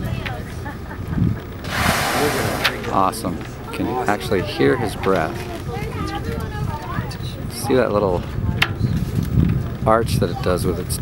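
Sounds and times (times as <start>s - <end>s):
low steady rumble: 0.9s - 7.5s
whale blow: 1.6s - 3.4s.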